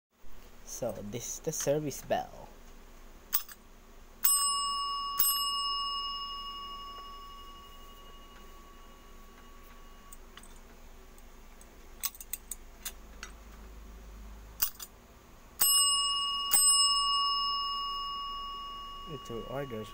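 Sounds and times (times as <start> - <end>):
desk service bell ringing: 4.2 - 10.3, 15.6 - 19.9.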